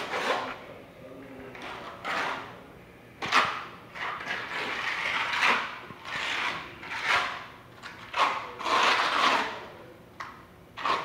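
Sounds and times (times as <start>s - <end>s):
trowel scraping wet mortar: 0.0s - 0.6s, 1.6s - 2.5s, 3.2s - 9.7s, 10.8s - 11.0s.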